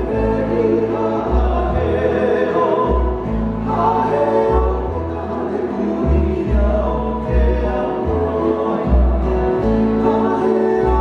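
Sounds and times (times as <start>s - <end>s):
acoustic guitars strumming: 0.0s - 11.0s
men singing in harmony: 0.0s - 11.0s
upright bass playing deep notes: 0.0s - 11.0s.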